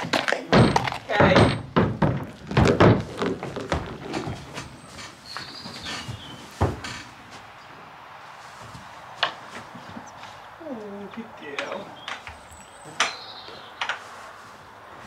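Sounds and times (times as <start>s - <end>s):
horse hooves knocking on ramp: 0.0s - 4.8s
hooves shuffling in straw: 3.1s - 11.2s, 12.4s - 15.0s.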